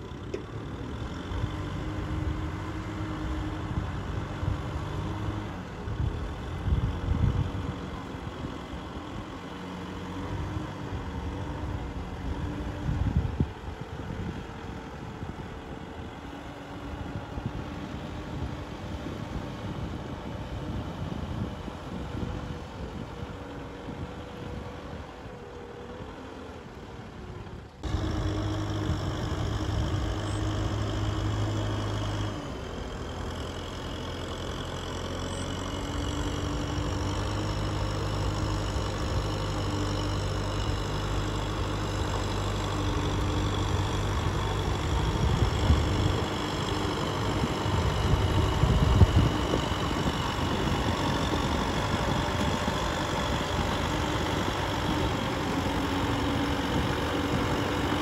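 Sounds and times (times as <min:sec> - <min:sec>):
tractor diesel engine running: 0:00.0 - 0:58.0.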